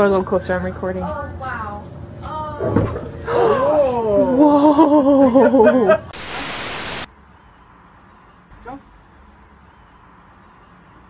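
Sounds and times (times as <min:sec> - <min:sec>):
static hiss burst: 0:06.1 - 0:07.1.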